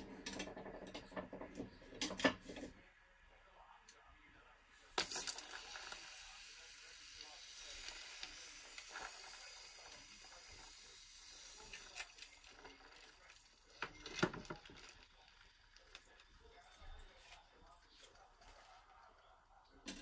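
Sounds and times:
hissing with fine crackling: 0:04.9 - 0:19.6
hot glass clinking: 0:05.0 - 0:06.4.

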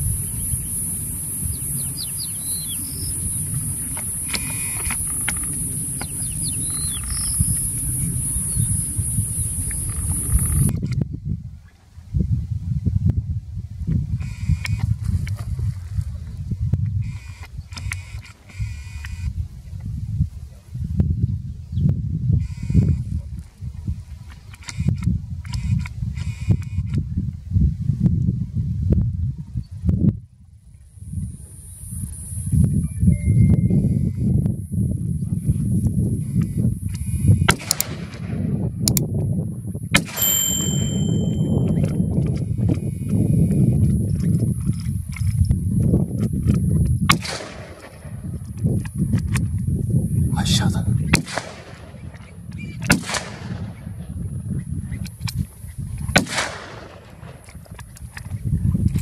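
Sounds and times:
wind rumbling on microphone: 0:00.0 - 0:59.0
sharp cracks: 0:37.5 - 0:38.3, 0:47.1 - 0:48.2, 0:51.1 - 0:53.8, 0:56.1 - 0:58.3.

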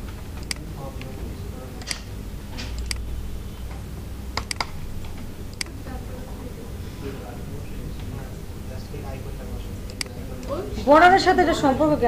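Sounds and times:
low steady hum: 0:00.0 - 0:12.0
keyboard keys clicking: 0:04.4 - 0:05.8.

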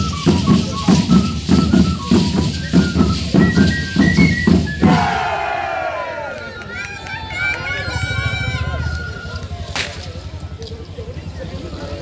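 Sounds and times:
low crowd rumble: 0:00.0 - 0:12.0
sharp whip crack: 0:09.7 - 0:10.2.

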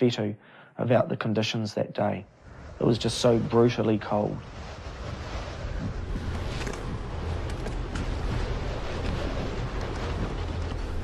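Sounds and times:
wind buffeting microphone: 0:02.3 - 0:11.0.

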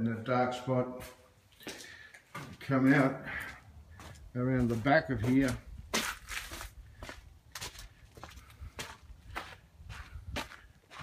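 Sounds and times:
footsteps crunching on rough ground: 0:00.6 - 0:11.0.

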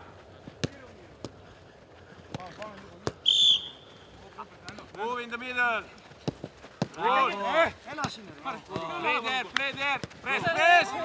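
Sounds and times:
football kicks: 0:00.5 - 0:01.4, 0:02.3 - 0:03.7, 0:07.9 - 0:10.7
sports whistle blown: 0:03.2 - 0:04.0.

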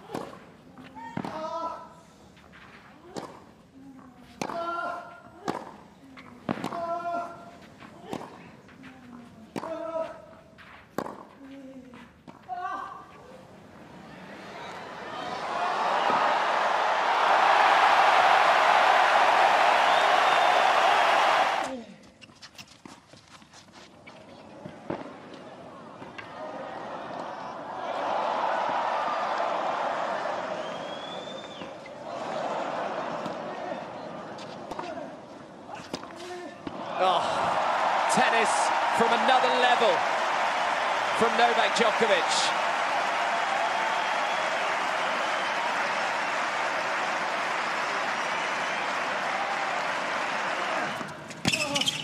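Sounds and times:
tennis ball striking racket: 0:04.3 - 0:04.8, 0:05.4 - 0:07.1, 0:07.9 - 0:12.5
crowd cheering and applauding: 0:14.0 - 0:21.7, 0:26.6 - 0:34.0, 0:36.8 - 0:51.9.

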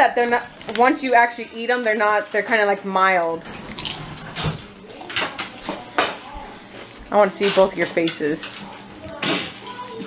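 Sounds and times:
potato chip crunching: 0:03.7 - 0:04.1.

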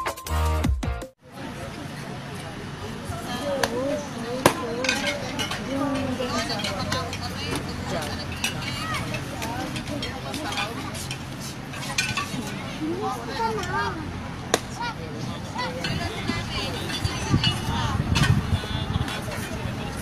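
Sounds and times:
players and onlookers talking: 0:01.2 - 0:20.0.

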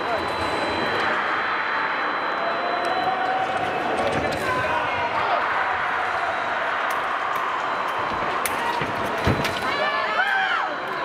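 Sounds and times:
faint steady high tone: 0:00.0 - 0:03.8
voices in a large hall: 0:00.0 - 0:11.0.

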